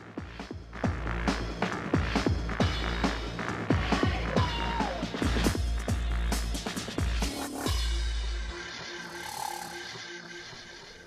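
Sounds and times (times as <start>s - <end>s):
electronic theme music: 0.0s - 11.0s.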